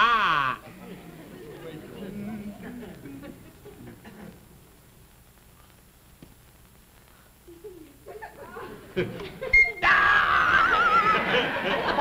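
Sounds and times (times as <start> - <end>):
studio audience laughing: 0.6 - 4.5, 10.5 - 12.0.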